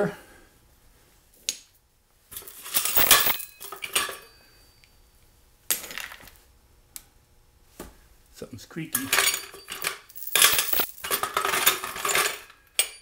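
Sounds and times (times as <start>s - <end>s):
metal balls clanking in gravel: 2.4s - 4.4s, 9.0s - 13.0s.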